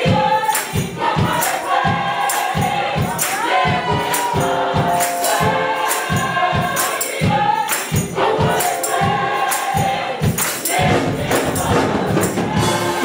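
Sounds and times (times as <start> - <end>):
jingling percussion: 0.0 - 13.0
steady drum beat: 0.0 - 13.0
voices singing together: 0.0 - 13.0.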